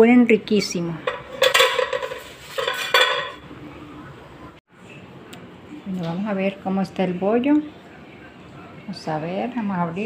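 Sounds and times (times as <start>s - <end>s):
metal utensil scraping metal pot: 0.6s - 3.4s.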